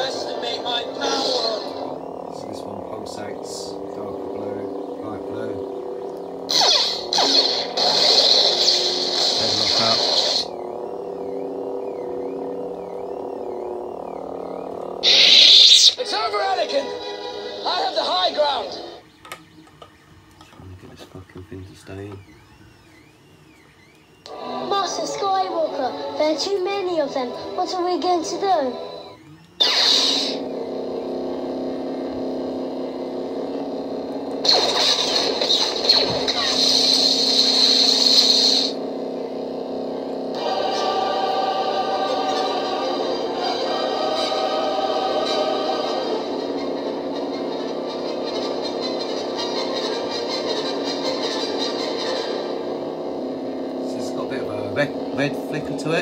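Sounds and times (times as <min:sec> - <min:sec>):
voices: 0:00.0 - 0:06.4, 0:09.4 - 0:29.6, 0:53.8 - 0:56.0
lightsaber blade hum: 0:00.0 - 0:16.2, 0:21.5 - 0:56.0
lightsaber ignition burst: 0:06.4 - 0:12.4, 0:15.0 - 0:16.1, 0:29.6 - 0:30.8, 0:34.4 - 0:38.8
soundtrack-style music: 0:33.0 - 0:56.0.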